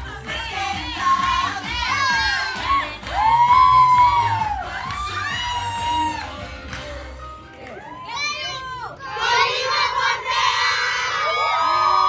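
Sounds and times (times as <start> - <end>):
dance music with steady beat: 0.0 - 7.8
crowd shouting and cheering: 0.0 - 12.0.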